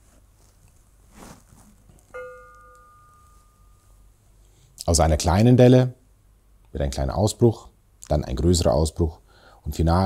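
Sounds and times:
soft handling rustle: 0.0s - 3.9s
metal ring ringing: 2.1s - 4.1s.

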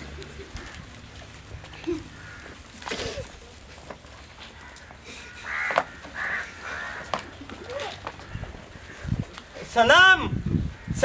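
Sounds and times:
crow cawing: 2.0s - 2.7s, 4.5s - 9.1s, 10.7s - 11.0s.

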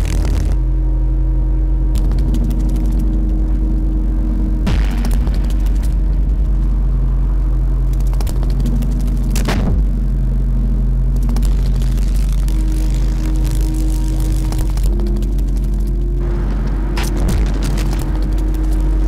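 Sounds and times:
deep steady rumble: 0.0s - 19.0s
low drone tones: 0.0s - 19.0s.

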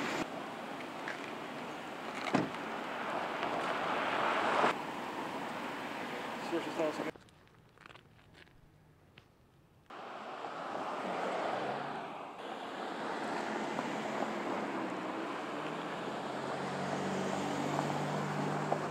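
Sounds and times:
steady rushing outdoor noise: 0.0s - 7.1s, 9.9s - 18.9s.

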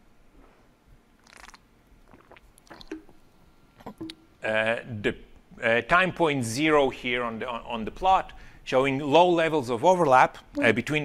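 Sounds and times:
man sipping from a bottle: 1.2s - 3.2s
swallowing clicks: 1.2s - 3.2s, 3.8s - 4.3s.

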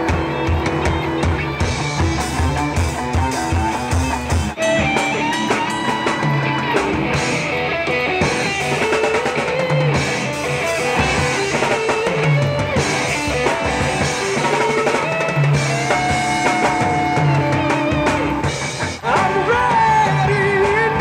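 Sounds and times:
drum kit with bass drum beats: 0.0s - 21.0s
electric guitar: 0.0s - 21.0s.

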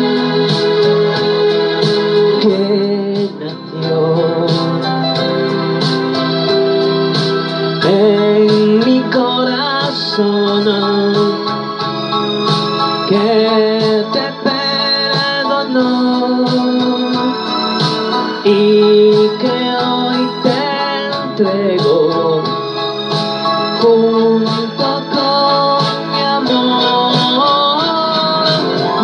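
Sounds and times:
electronic organ backing track: 0.0s - 29.0s
man singing into a microphone: 2.3s - 5.2s, 7.8s - 11.6s, 13.1s - 17.6s, 18.4s - 22.6s, 23.7s - 29.0s.

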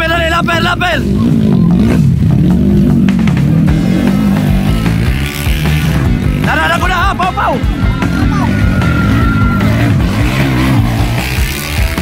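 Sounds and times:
motorcycle engine revving: 0.0s - 12.0s
music playing: 0.4s - 12.0s.

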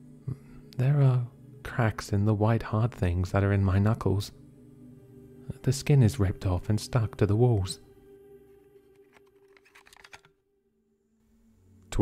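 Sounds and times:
faint background music drone: 0.0s - 12.0s.

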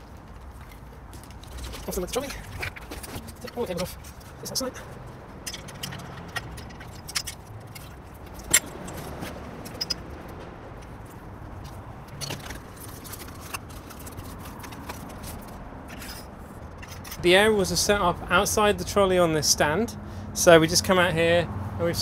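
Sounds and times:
metallic clinks: 5.4s - 10.2s.

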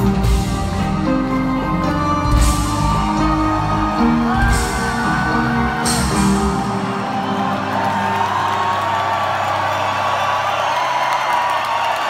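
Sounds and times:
crowd cheering and whooping: 2.2s - 12.0s.

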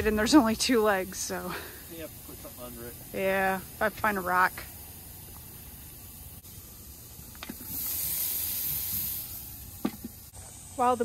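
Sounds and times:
burgers sizzling on a grill: 0.0s - 11.0s.

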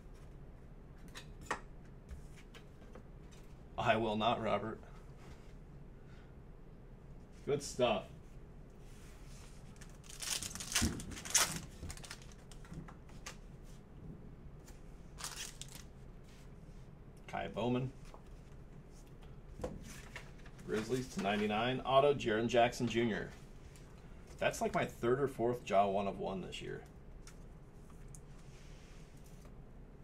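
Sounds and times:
steady low hum: 0.0s - 30.0s
foil card pack crinkling: 9.7s - 12.7s, 15.2s - 15.9s.

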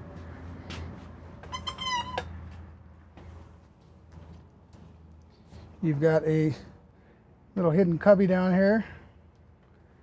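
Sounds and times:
high-pitched squeak: 1.4s - 2.4s.

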